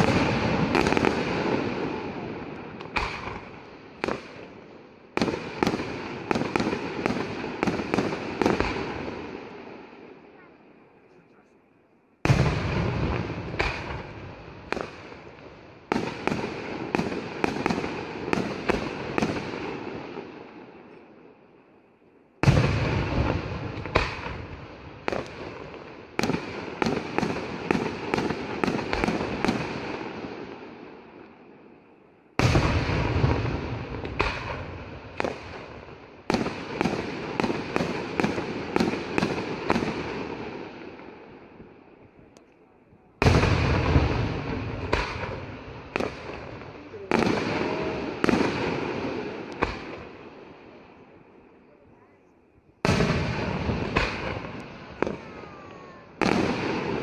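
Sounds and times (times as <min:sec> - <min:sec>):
firework sharp bangs: 0:00.0 - 0:10.2, 0:12.2 - 0:21.0, 0:22.4 - 0:31.2, 0:32.4 - 0:42.5, 0:43.2 - 0:52.0, 0:52.8 - 0:57.0.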